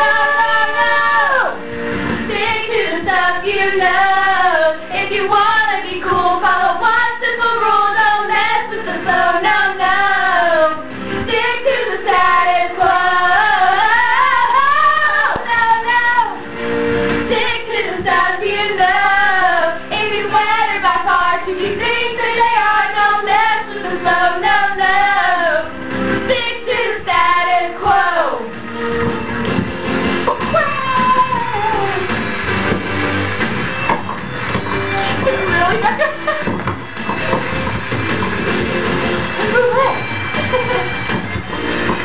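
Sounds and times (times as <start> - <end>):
girls singing into microphones: 0.0 - 16.5, 17.2 - 29.1, 30.3 - 32.2
recorded pop song: 0.0 - 42.0.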